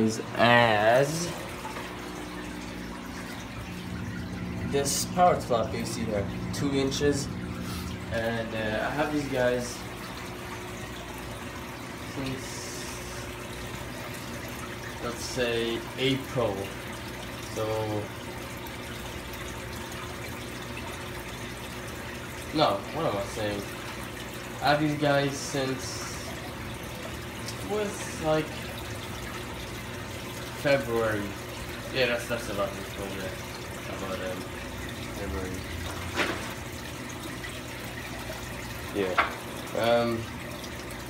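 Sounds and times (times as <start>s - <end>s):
aquarium air bubbles: 0.0s - 41.0s
water churning: 0.0s - 41.0s.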